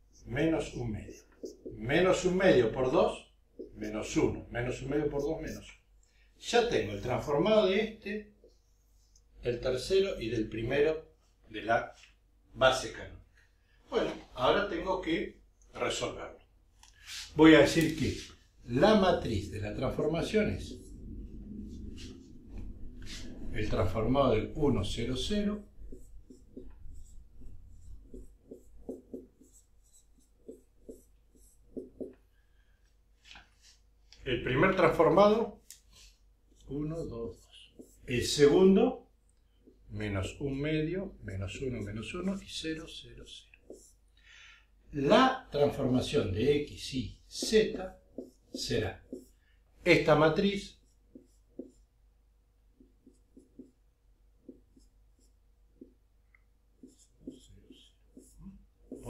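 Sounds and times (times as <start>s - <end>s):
marker squeaking on whiteboard: 0.2s - 2.4s, 3.6s - 4.2s, 25.8s - 32.2s, 36.7s - 38.1s, 43.6s - 44.0s, 47.3s - 49.4s, 50.8s - 52.0s, 52.8s - 56.0s, 56.8s - 59.0s.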